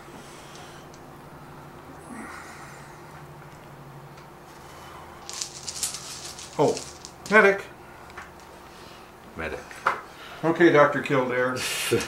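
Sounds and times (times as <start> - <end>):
faint room hum: 0.0 - 12.0
dice rattling in a cloth bag: 5.2 - 7.4.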